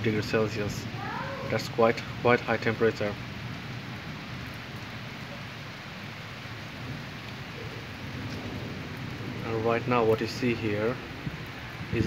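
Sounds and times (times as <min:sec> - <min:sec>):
torrential rain: 0:00.0 - 0:12.0.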